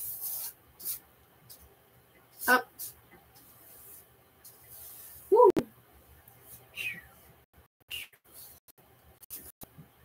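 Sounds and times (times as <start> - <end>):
paintbrush strokes on canvas: 0.0 - 1.7, 2.4 - 5.3.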